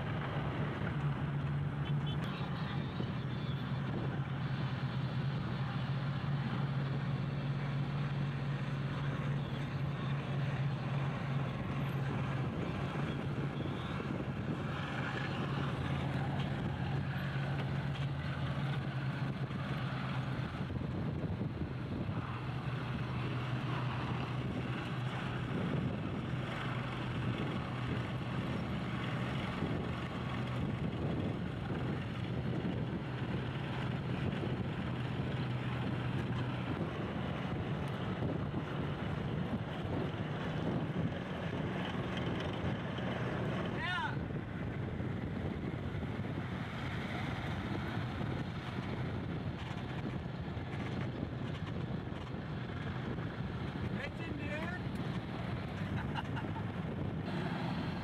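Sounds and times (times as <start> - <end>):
vehicle engines droning: 0.0 - 58.0
wind and road noise: 0.0 - 58.0.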